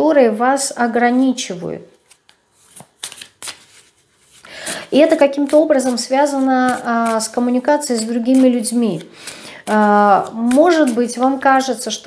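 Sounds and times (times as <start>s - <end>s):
cards being shuffled: 2.0s - 11.4s.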